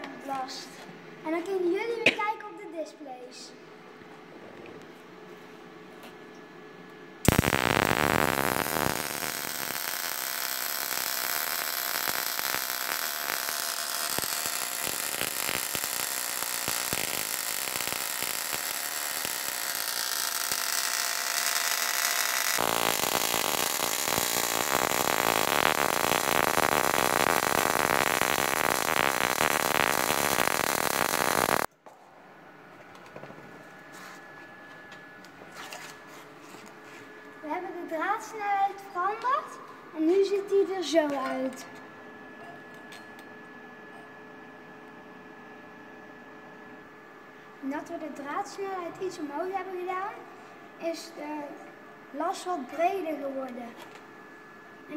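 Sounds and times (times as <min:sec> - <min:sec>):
welding arc on steel: 0:07.2 - 0:31.7.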